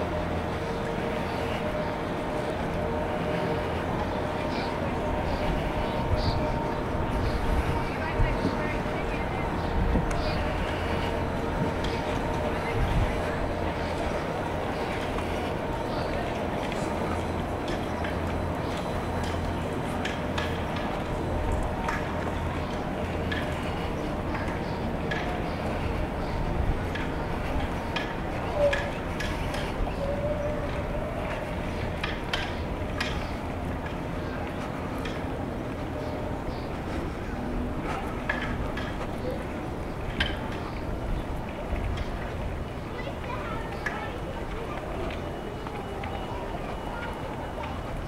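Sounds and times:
low background rumble: 0.0s - 44.7s
faint indistinct voices: 0.0s - 48.0s.

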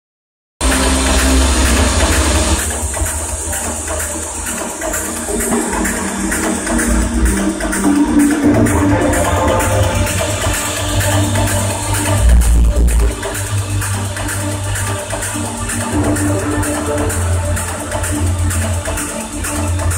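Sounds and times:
heavy bass line: 0.6s - 19.9s
loud techno music: 0.6s - 19.9s
rising synth line: 0.6s - 19.9s
ticking hi-hat pattern: 0.6s - 19.9s.

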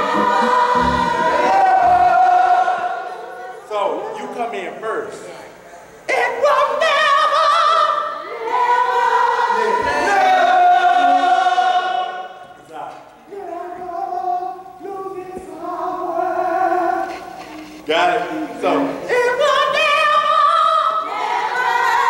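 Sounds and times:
choir singing a cappella: 0.0s - 4.3s, 6.1s - 12.6s, 13.3s - 22.0s.

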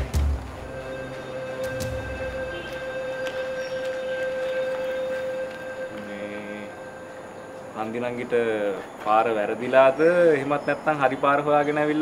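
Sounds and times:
high note held steadily: 0.0s - 9.0s.

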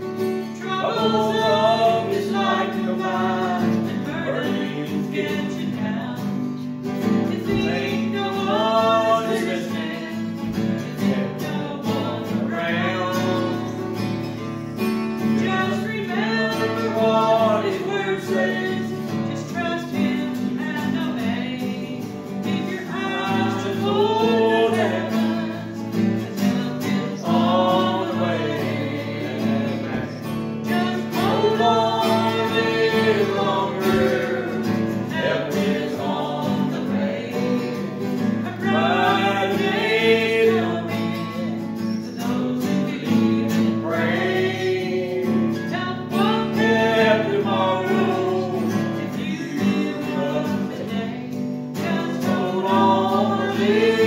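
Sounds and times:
guitar accompaniment: 0.0s - 54.0s
man and woman singing a hymn: 0.0s - 54.0s.

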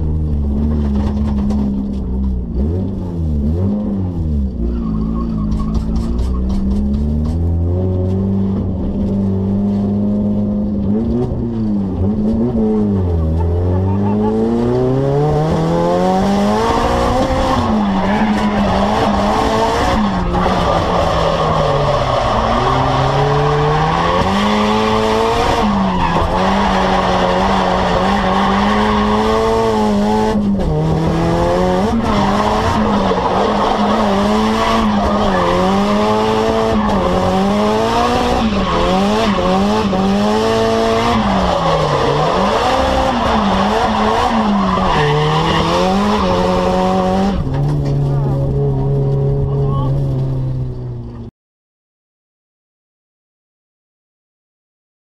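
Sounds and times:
car engine revving high: 9.3s - 50.6s.

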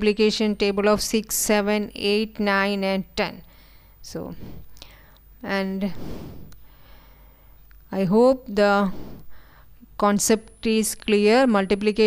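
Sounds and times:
woman speaking: 0.0s - 3.4s, 4.1s - 4.4s, 5.4s - 6.0s, 7.9s - 8.9s, 10.0s - 12.0s
woman's intake of breath: 3.5s - 5.2s, 5.9s - 7.6s, 8.8s - 9.8s.

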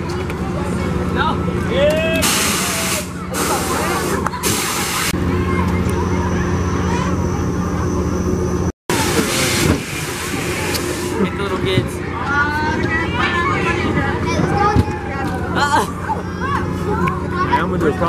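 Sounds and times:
ride machinery humming: 0.0s - 18.0s
loud air hissing bursts: 2.2s - 5.2s, 8.9s - 11.2s.

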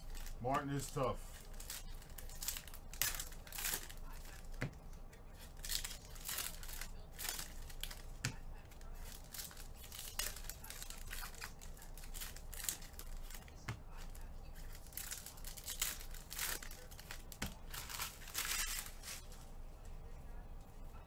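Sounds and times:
wrappers tearing and rustling: 0.0s - 19.4s.

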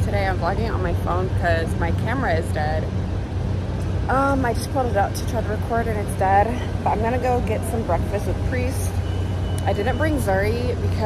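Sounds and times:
woman's voice: 0.0s - 2.9s, 4.0s - 9.0s, 9.6s - 11.0s
low rumble of street traffic: 0.0s - 11.0s.

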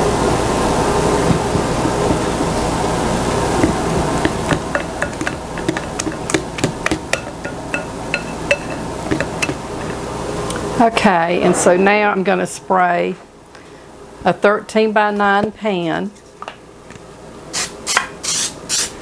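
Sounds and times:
metal whisk clinking on bowl: 7.1s - 9.6s.

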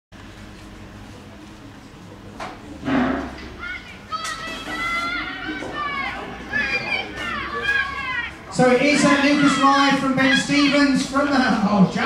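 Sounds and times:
young spectators shouting and cheering: 3.5s - 12.0s.

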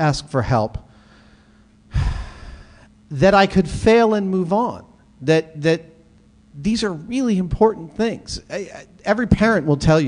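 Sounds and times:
man breathing into microphone: 0.9s - 3.0s
man talking: 3.1s - 6.0s, 6.6s - 10.0s.

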